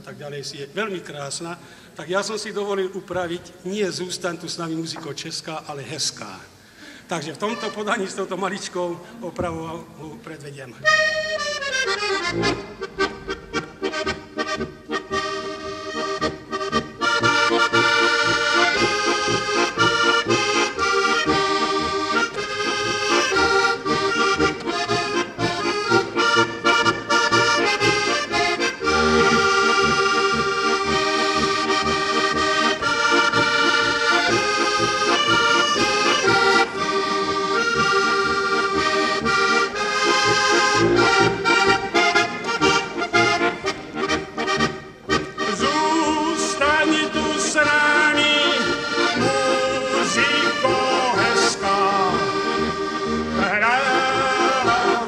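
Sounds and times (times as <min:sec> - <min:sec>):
button accordion playing polka: 0:07.3 - 0:08.4, 0:10.8 - 0:55.0.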